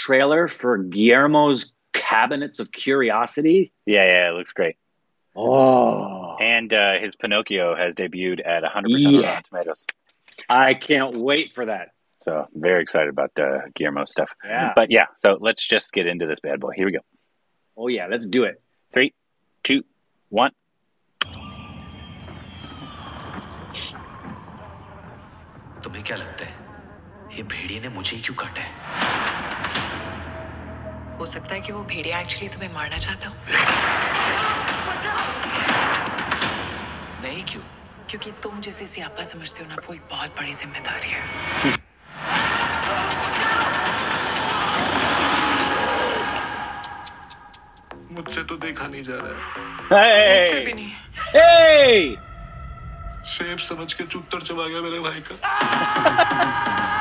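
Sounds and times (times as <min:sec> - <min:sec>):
person laughing: 0:05.4 - 0:09.7, 0:12.4 - 0:15.4, 0:55.5 - 0:57.0
sustained high tones: 0:08.2 - 0:09.8, 0:21.2 - 0:28.9, 0:30.0 - 0:33.6
dense ambient wash: 0:51.5 - 0:55.4.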